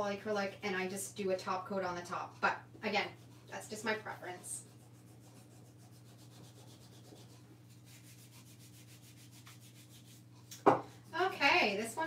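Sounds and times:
fingertips rubbing paper: 4.6 - 10.3.

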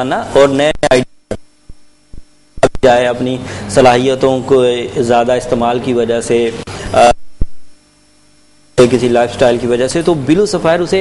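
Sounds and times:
man speaking: 0.0 - 1.4, 2.6 - 7.3, 8.8 - 11.0
faint electrical hum: 0.0 - 11.0.

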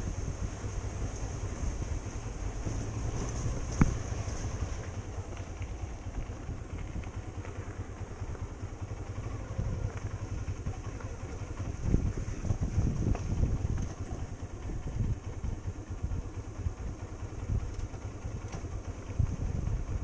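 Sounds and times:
motorcycle engine low rumble: 0.0 - 20.0.

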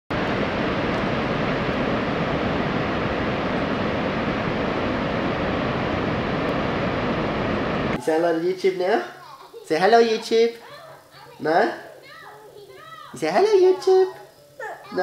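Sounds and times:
wind-like rushing noise: 0.1 - 8.0.

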